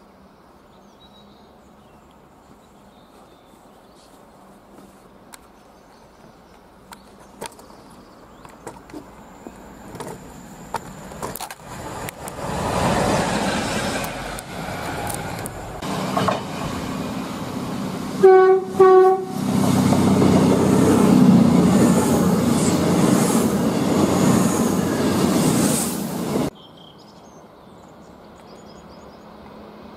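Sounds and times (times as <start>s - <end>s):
train rumbling past: 8.2s - 26.5s
train horn toots: 18.2s - 19.6s.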